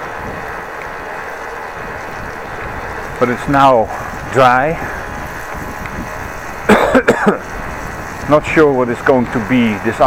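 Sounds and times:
steady background rush: 0.0s - 10.0s
man coughing: 6.7s - 7.5s.

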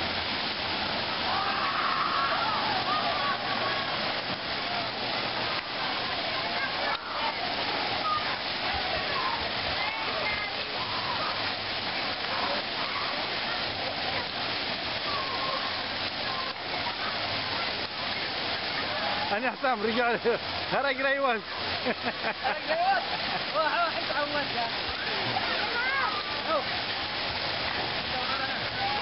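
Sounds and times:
water pouring and spraying: 0.0s - 29.0s
children's voices: 1.2s - 19.3s, 24.8s - 29.0s.

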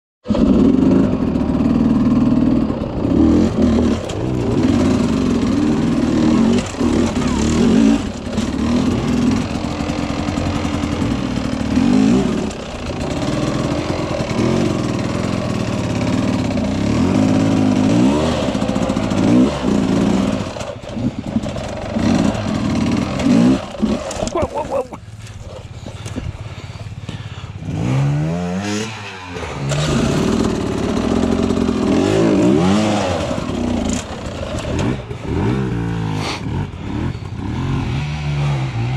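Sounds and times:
dirt bike engine revving: 0.2s - 38.9s.

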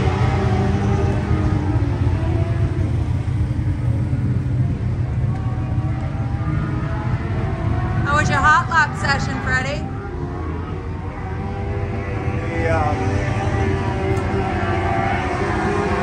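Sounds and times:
engine rumbling: 0.0s - 16.0s.

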